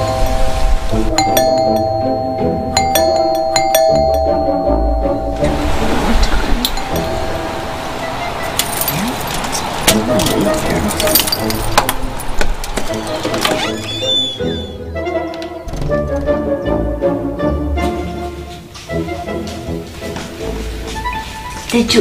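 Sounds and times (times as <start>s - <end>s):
background music: 0.0s - 22.0s
keys jingling: 8.4s - 13.9s.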